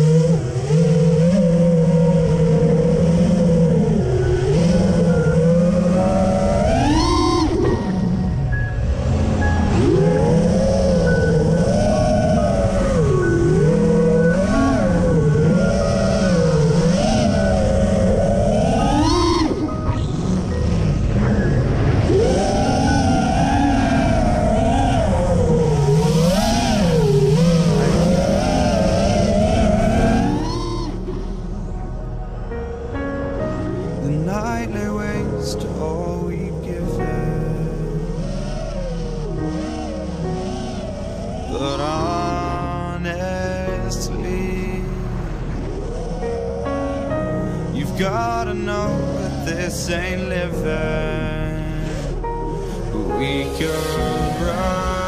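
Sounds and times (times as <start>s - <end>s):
quadcopter motors whining: 0.0s - 34.4s, 37.0s - 43.0s.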